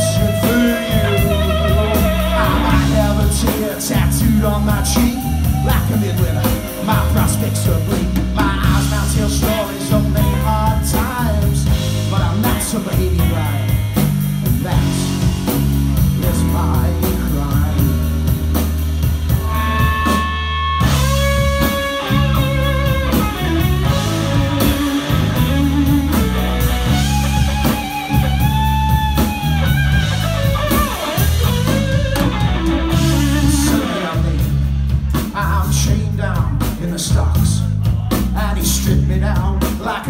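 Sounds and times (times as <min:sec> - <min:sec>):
electric guitar lead: 0:00.0 - 0:35.3
bass guitar: 0:00.0 - 0:40.0
drums: 0:00.0 - 0:40.0.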